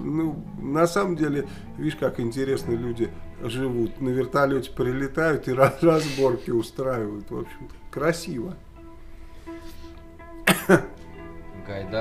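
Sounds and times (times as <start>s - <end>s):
quiet background music: 0.0s - 12.0s
man coughing: 10.4s - 10.9s.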